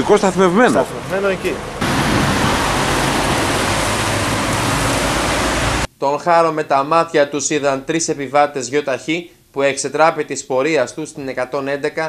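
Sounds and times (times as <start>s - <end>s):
rain falling on a wet street: 0.2s - 5.9s.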